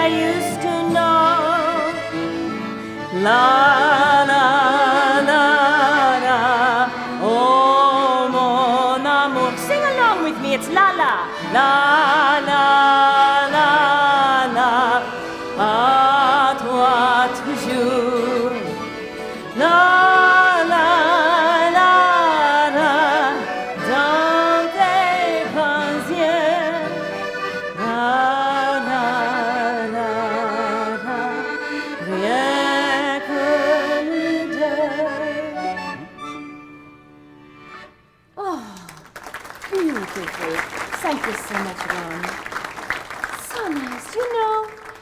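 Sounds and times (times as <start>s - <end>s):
woman singing la la: 0.0s - 2.0s, 3.1s - 18.7s, 19.6s - 26.9s, 27.8s - 31.4s, 32.0s - 35.5s
violin: 0.0s - 37.9s
acoustic guitar: 0.0s - 45.0s.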